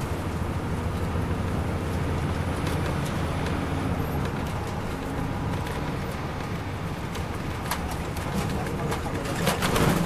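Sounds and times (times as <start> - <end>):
bus engine low drone: 0.0 - 10.0
sharp rattles and knocks: 2.6 - 10.0.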